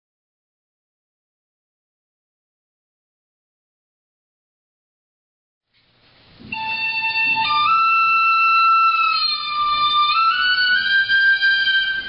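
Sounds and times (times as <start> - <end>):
flute holding high note: 6.5 - 12.0.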